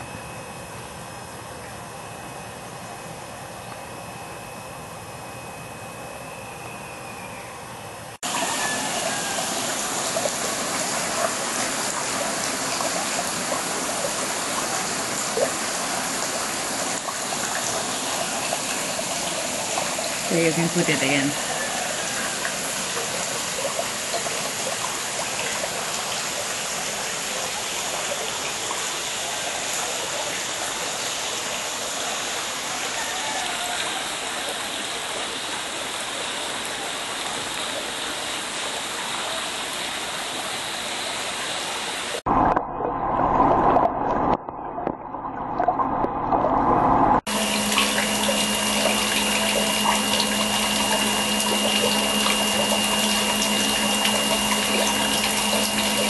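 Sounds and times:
steady hum: 0.0s - 33.0s, 46.4s - 56.0s
water running and bubbling: 8.2s - 56.0s.

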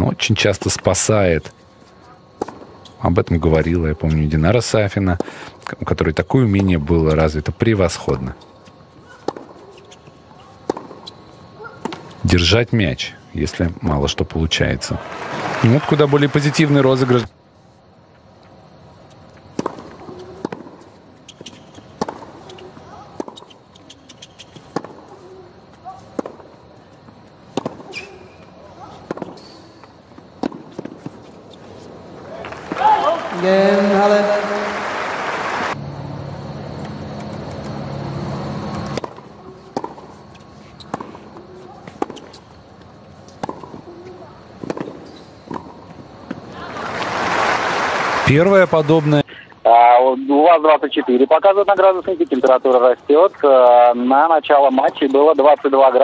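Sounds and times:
racket striking tennis ball: 2.4s - 2.7s, 9.0s - 12.1s, 19.4s - 25.4s, 26.0s - 26.5s, 27.1s - 31.4s, 38.7s - 42.6s, 43.2s - 46.4s
ball bouncing on hard court: 9.1s - 9.9s, 10.6s - 12.1s, 19.6s - 25.1s, 28.9s - 29.5s, 30.4s - 31.2s, 38.8s - 42.4s, 43.3s - 46.4s
crowd cheering and applauding: 15.0s - 16.8s, 32.4s - 35.8s, 46.6s - 49.2s.

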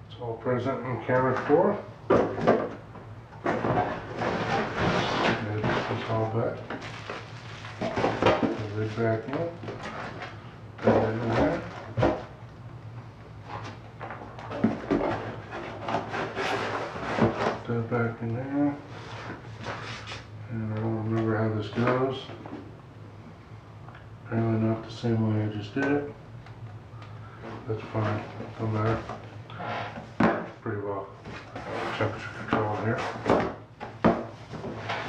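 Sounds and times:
low steady hum: 0.0s - 35.0s.

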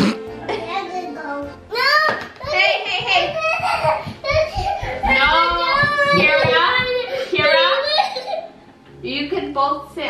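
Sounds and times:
toddler crying: 1.7s - 8.5s.

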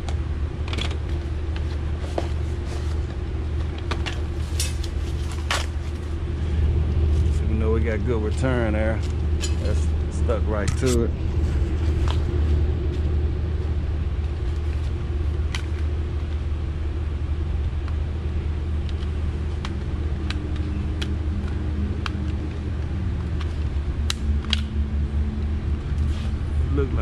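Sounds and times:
air handler blower humming: 0.0s - 27.0s.

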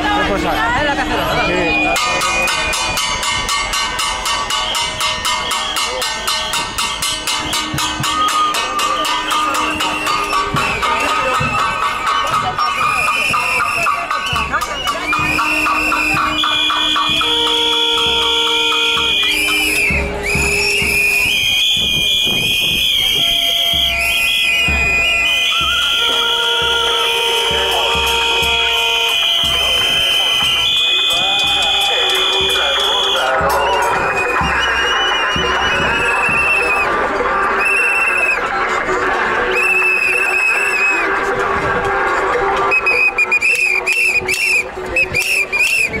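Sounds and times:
crowd voices: 0.0s - 46.0s
whistles blowing: 1.3s - 3.3s, 4.2s - 38.5s, 39.5s - 41.1s, 42.6s - 46.0s.

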